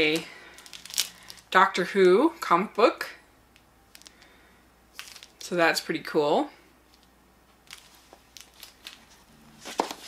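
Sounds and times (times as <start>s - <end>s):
plastic packaging crinkling: 0.0s - 1.6s, 3.9s - 4.3s, 4.9s - 5.5s, 6.9s - 10.0s.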